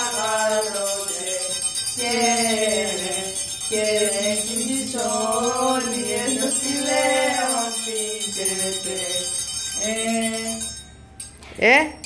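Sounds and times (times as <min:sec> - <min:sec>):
boys singing carols: 0:00.0 - 0:11.0
metal triangles ringing: 0:00.0 - 0:12.0.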